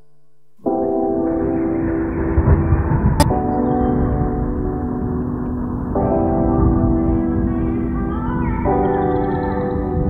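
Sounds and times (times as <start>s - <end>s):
held chord: 0.0s - 10.0s
loud dense rumbling noise: 1.3s - 9.0s.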